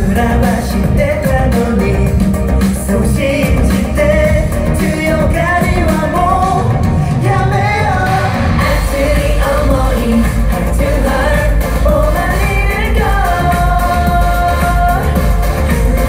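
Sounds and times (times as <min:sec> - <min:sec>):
dance-pop backing music: 0:00.0 - 0:16.0
men singing into microphones: 0:00.0 - 0:16.0.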